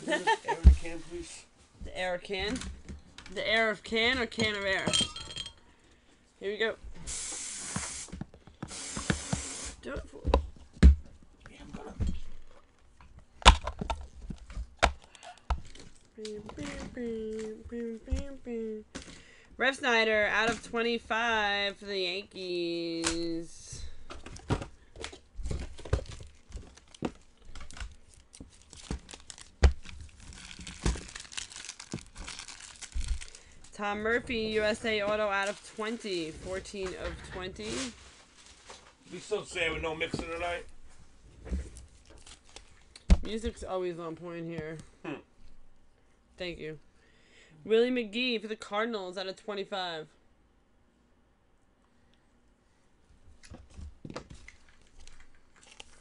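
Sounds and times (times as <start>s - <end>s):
compressed air spraying: 7.0s - 8.1s, 8.7s - 9.8s
plastic packaging crinkling and tearing: 25.8s - 33.7s, 42.0s - 43.0s, 54.4s - 56.0s.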